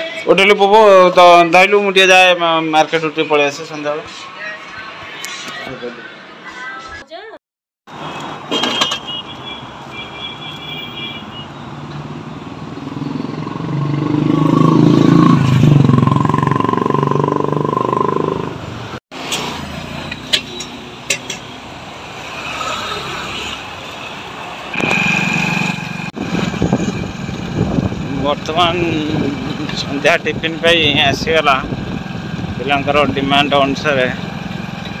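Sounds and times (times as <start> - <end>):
street noise: 0.0 - 35.0
loud vehicle engine running: 24.7 - 35.0.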